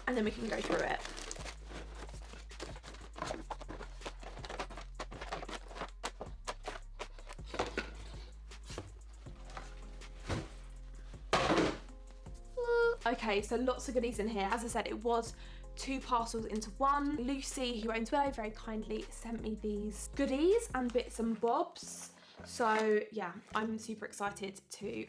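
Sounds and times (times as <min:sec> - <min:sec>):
cardboard and plastic packaging rustling: 0:00.0 - 0:11.9
soft background music: 0:00.0 - 0:25.0.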